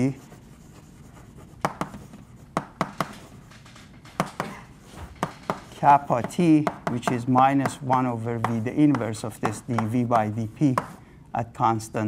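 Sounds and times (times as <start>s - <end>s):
chalk tapping on blackboard: 0.0s - 11.0s.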